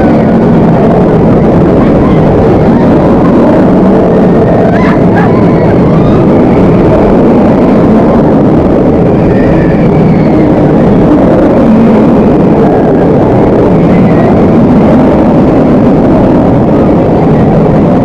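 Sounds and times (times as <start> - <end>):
roller coaster wind and track noise: 0.0 - 18.0.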